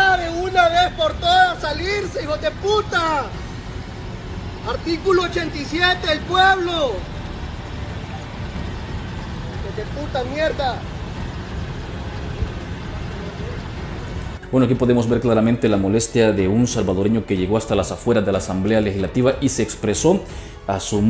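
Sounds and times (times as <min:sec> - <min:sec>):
low rumble of street traffic: 0:00.0 - 0:21.0
man shouting angrily: 0:04.7 - 0:07.0.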